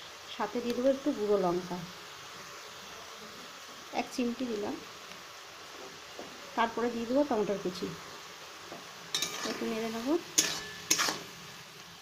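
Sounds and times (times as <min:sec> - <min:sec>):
greens sizzling: 0:00.0 - 0:12.0
spatula scraping metal pan: 0:09.1 - 0:11.5.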